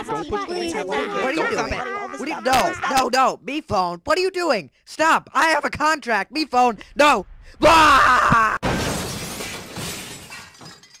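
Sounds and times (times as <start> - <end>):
glass shattering: 8.6 - 11.0
falling glass pieces rattling: 8.8 - 11.0.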